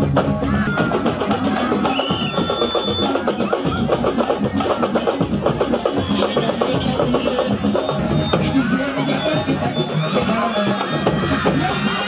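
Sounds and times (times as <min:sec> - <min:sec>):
fast drumming: 0:00.0 - 0:12.0.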